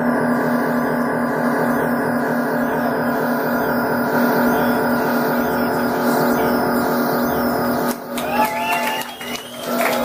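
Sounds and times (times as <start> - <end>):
steady low tone: 0.0 - 8.4.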